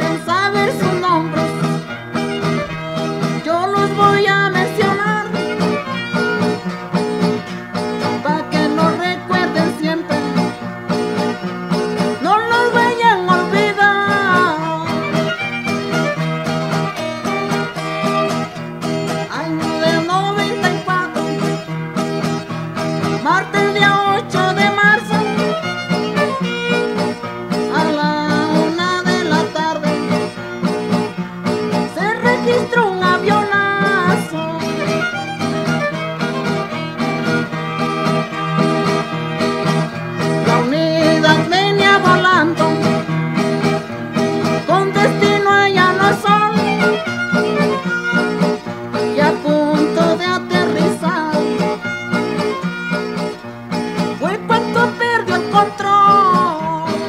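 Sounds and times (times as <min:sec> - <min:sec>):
strummed guitar: 0:00.0 - 0:57.0
violin sliding melody: 0:00.0 - 0:57.0.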